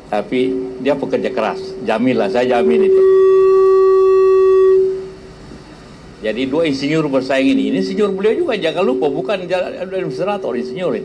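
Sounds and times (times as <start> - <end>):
low room noise: 0.0 - 11.0
microphone feedback tone: 0.2 - 5.4, 7.2 - 11.0.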